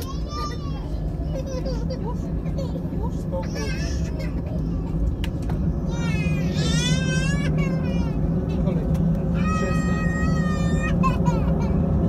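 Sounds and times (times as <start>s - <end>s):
jet engines rumbling in cabin: 0.0s - 12.0s.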